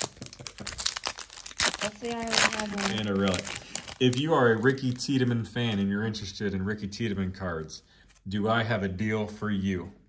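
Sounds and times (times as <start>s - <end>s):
foil wrapper crinkling: 0.0s - 5.8s.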